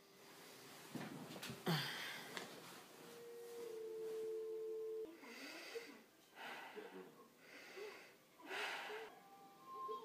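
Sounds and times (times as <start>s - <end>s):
fainter lower tone: 2.6s - 5.9s, 8.9s - 10.0s.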